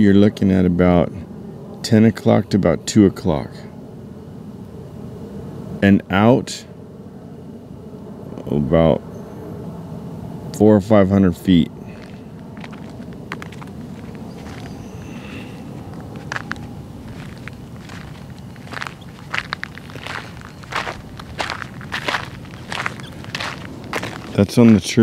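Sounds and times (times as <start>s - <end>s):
faint low rumble: 11.4s - 25.0s
footsteps on gritty asphalt: 11.8s - 25.0s.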